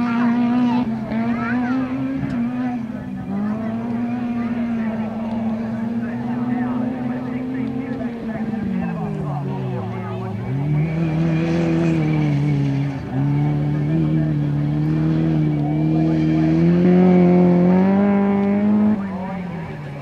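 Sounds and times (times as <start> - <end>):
buggy engine revving hard: 0.0 - 20.0.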